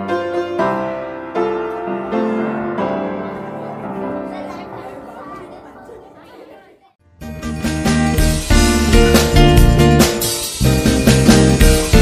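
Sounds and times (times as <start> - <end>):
piano music: 0.0 - 12.0
children and adults chattering: 2.6 - 7.0.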